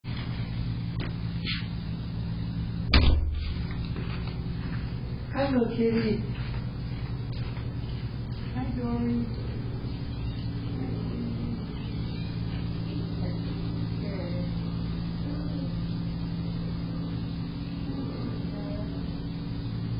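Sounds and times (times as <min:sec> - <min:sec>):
low mechanical hum: 0:00.0 - 0:19.9.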